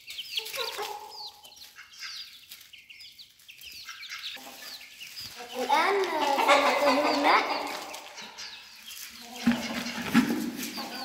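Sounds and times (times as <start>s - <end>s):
chickens calling: 0.0s - 11.0s.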